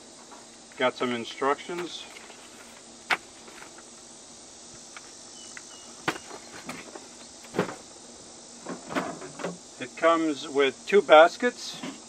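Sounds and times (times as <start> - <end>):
crickets chirring: 0.0 - 12.0
knocks handling cardboard packing: 1.7 - 3.9, 6.0 - 7.9.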